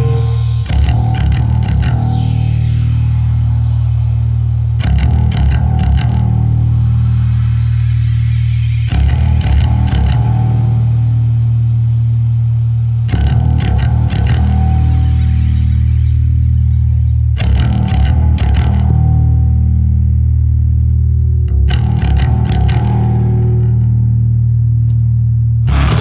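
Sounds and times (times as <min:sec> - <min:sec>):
droning bass guitar: 0:00.0 - 0:26.0
electric guitar through effects: 0:00.0 - 0:26.0.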